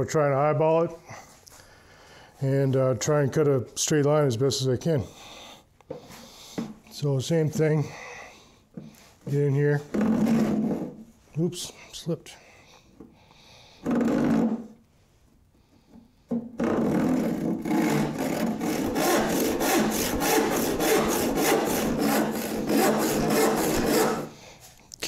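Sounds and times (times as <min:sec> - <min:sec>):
hand saw cutting board: 0:16.6 - 0:24.4.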